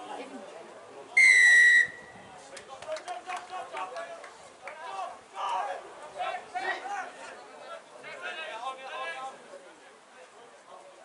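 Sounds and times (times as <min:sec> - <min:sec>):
referee's whistle blast: 0:01.2 - 0:02.1.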